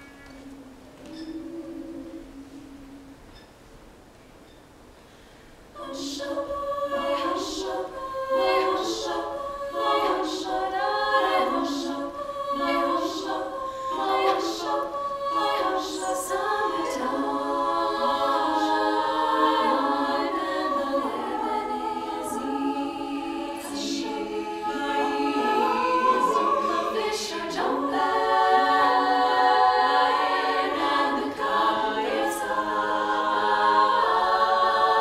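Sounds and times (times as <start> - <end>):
women singing close harmony: 0.4 - 3.2, 5.8 - 35.0.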